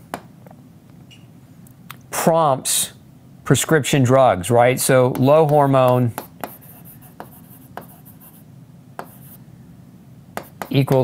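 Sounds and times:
pen taps: 0:05.1 - 0:08.0, 0:10.4 - 0:11.0
pen scratching: 0:05.2 - 0:08.4.

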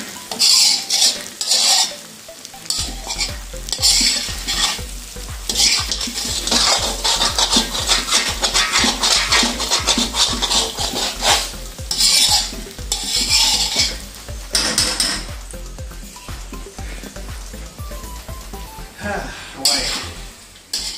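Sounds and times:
food sizzling: 0:00.0 - 0:20.9
spatula scraping metal wok: 0:00.3 - 0:02.1, 0:02.7 - 0:04.8, 0:05.6 - 0:15.2, 0:19.6 - 0:20.9.

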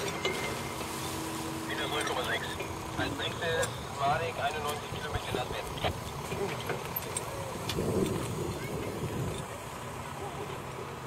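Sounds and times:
distant voices: 0:00.0 - 0:11.0
low engine hum: 0:00.0 - 0:11.0.

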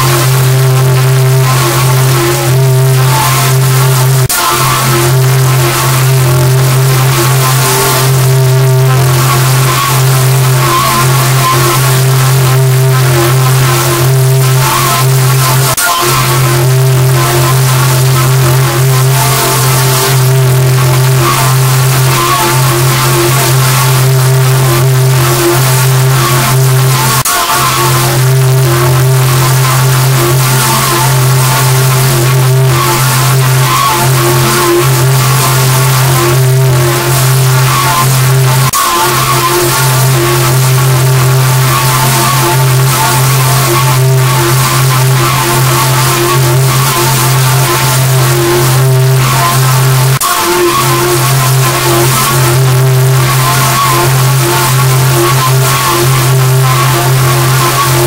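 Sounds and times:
harsh distorted hiss: 0:00.0 - 0:58.0
low drone: 0:00.0 - 0:58.0.

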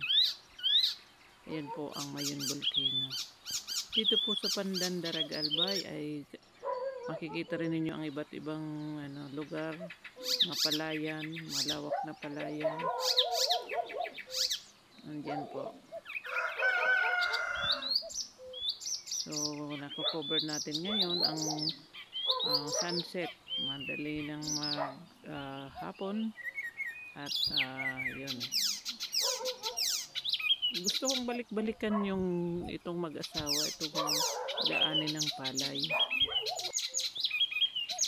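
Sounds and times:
birds chirping: 0:00.0 - 0:38.0
birds wavering calls: 0:00.0 - 0:38.0.

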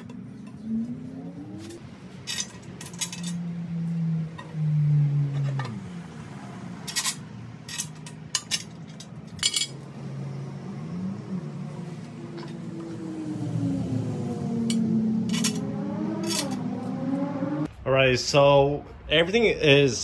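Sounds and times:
low hum: 0:08.5 - 0:19.0.

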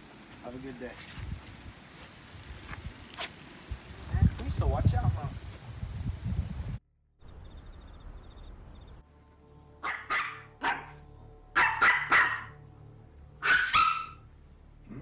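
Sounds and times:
dog barking: 0:09.8 - 0:11.0, 0:11.6 - 0:12.6, 0:13.4 - 0:14.2.

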